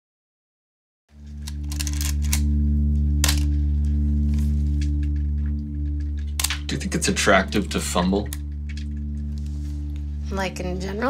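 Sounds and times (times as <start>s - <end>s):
low musical drone: 1.1s - 11.0s.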